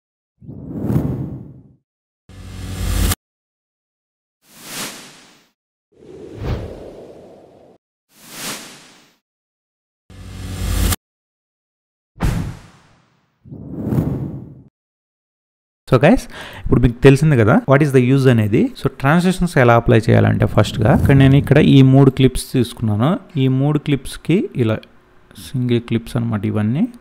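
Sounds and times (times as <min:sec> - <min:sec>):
whoosh sound effect: 0:20.6 - 0:21.8.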